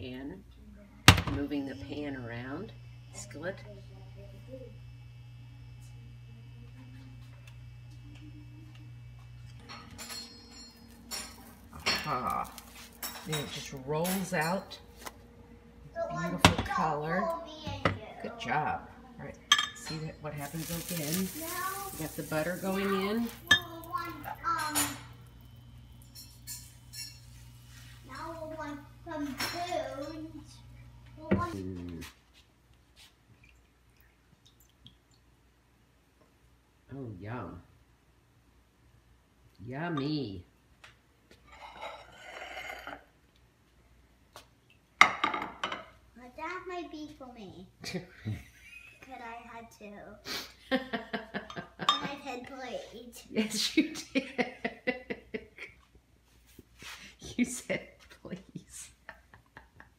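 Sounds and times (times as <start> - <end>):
steady low hum: 0.0 - 32.0
person's voice: 19.9 - 24.6.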